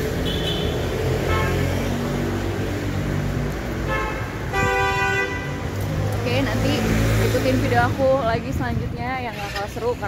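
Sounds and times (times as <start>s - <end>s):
road traffic from inside car: 0.0s - 10.0s.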